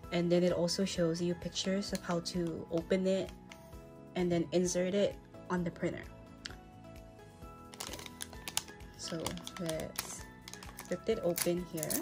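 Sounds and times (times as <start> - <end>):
background music: 0.0 - 12.0
foil pack crinkling: 7.6 - 12.0.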